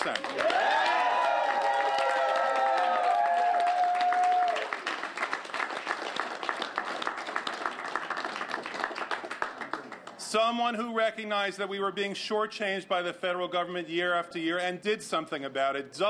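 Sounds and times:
crowd clapping: 0.0 - 10.2
people whooping: 0.4 - 4.8.

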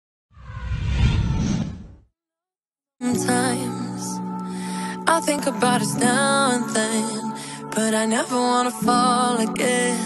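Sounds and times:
deep rumble: 0.4 - 2.0
whoosh sound effect: 0.4 - 2.0.

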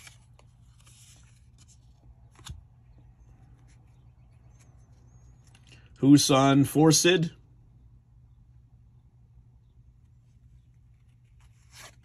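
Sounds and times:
cards sliding rustle: 0.0 - 2.7, 10.8 - 12.0
low room hum: 0.0 - 12.0.

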